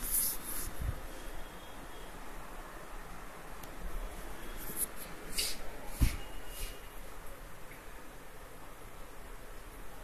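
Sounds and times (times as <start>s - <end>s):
hissy scrape: 0.0s - 0.9s, 4.6s - 6.9s
faint scratchy rustling: 0.0s - 1.0s.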